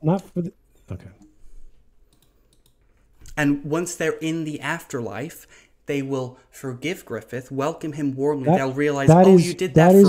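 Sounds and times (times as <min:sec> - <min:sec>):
faint computer clicking: 0:02.1 - 0:03.4.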